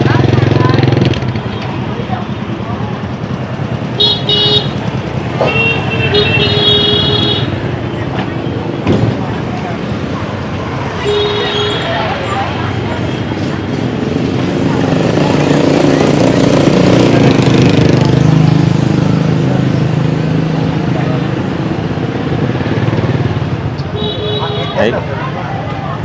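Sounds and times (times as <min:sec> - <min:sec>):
loud engine: 0:00.0 - 0:10.8, 0:12.0 - 0:23.8
motorbikes passing: 0:00.0 - 0:26.0
voices chattering: 0:00.0 - 0:26.0
vehicle horns beeping: 0:04.0 - 0:04.8, 0:05.4 - 0:07.6, 0:10.9 - 0:12.2, 0:23.9 - 0:25.0.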